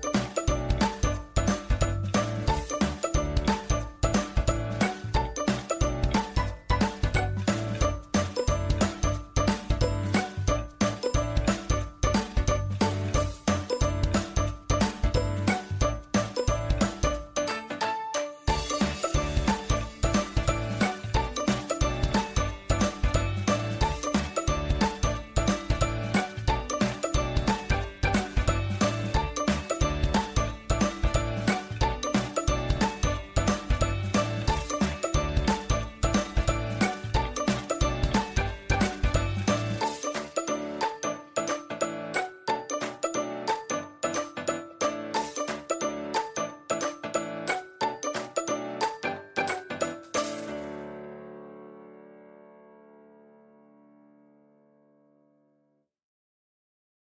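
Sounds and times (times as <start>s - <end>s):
background music with quick repeated notes: 0.0s - 51.3s.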